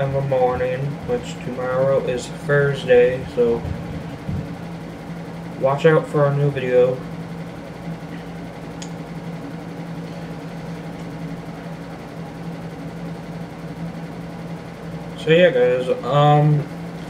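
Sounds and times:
low hum with soft hiss: 0.0 - 17.0.

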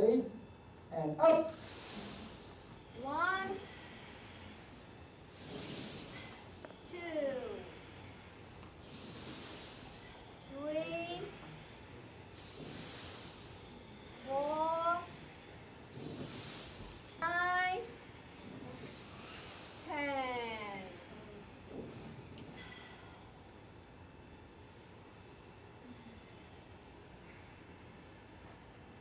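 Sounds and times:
man breathing: 1.4 - 24.6.

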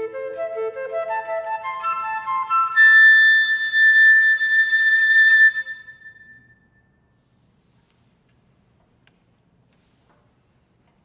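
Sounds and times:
flute playing high note: 0.0 - 6.6.

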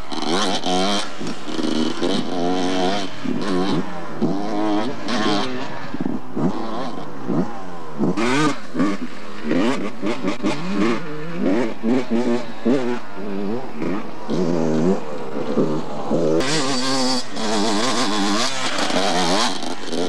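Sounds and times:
dirt bike engines revving: 0.0 - 20.0.

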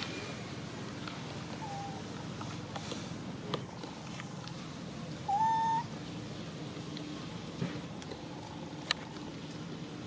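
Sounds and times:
macaque coo call: 1.6 - 2.1, 5.3 - 5.9.

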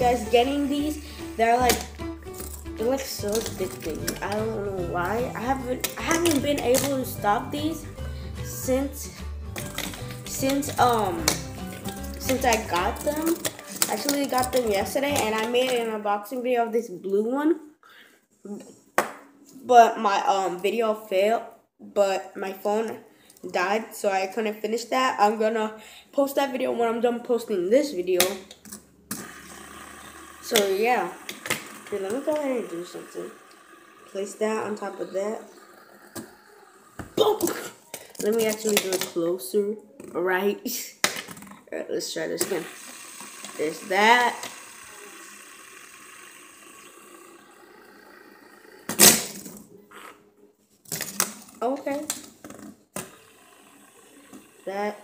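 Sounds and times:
fidget spinner whirring: 0.0 - 7.0, 29.1 - 37.3, 42.4 - 49.4
wordless vocal sounds: 29.2 - 38.6.

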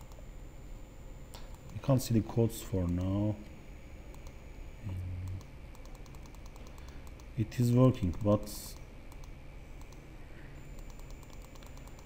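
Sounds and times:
low steady hum: 0.0 - 12.0
computer mouse clicks: 1.3 - 1.8, 2.8 - 3.2, 4.1 - 4.4, 5.2 - 7.3, 8.0 - 10.0, 10.7 - 12.0.

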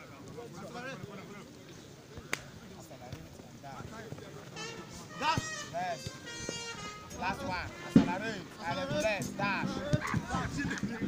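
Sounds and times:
people calling and shouting: 0.0 - 11.0.

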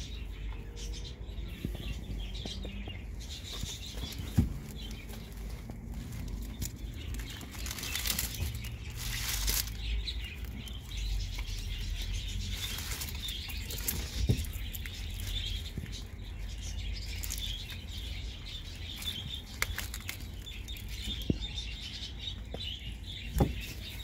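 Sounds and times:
steady low rumble: 0.0 - 20.5
small birds chirping: 0.0 - 24.0.

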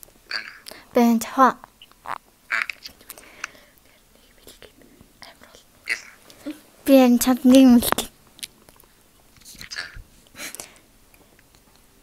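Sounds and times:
breathy whispering: 2.5 - 6.6.

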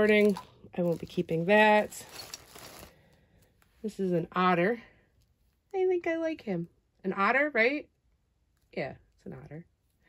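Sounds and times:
plastic bag crinkling: 0.0 - 3.6.

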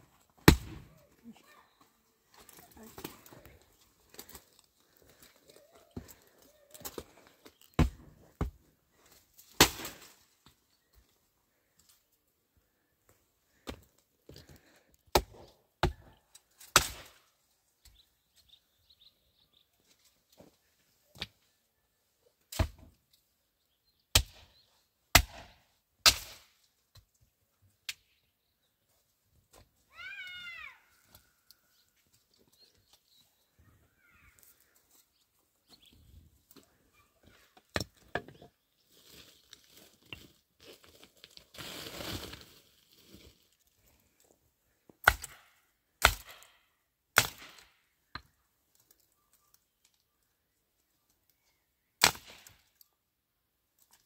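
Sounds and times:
hatchet chopping wood: 0.4 - 0.8, 7.8 - 8.6, 15.1 - 16.1, 24.1 - 24.4, 25.1 - 26.5, 45.0 - 46.6, 47.2 - 48.3.

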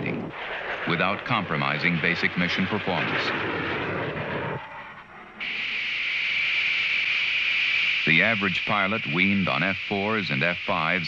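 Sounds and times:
jet aircraft rush: 0.0 - 11.0
steady high-pitched hiss: 4.7 - 11.0.

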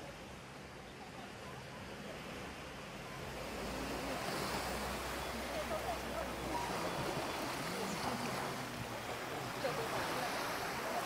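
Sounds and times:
surf washing onto beach: 1.6 - 11.0.

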